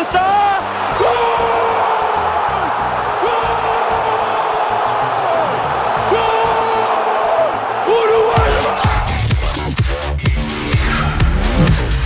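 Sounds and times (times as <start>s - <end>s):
commentator shouting goal: 0.0s - 1.9s, 7.8s - 9.1s
crowd noise: 0.0s - 9.4s
music with low beat: 8.4s - 12.0s.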